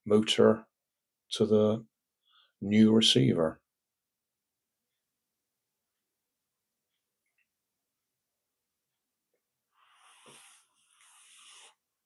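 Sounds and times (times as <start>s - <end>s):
person breathing close to microphone: 9.7s - 11.9s.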